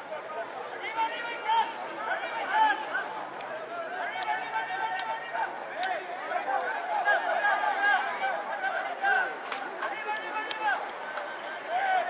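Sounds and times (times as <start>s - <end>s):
voices shouting: 0.7s - 12.0s.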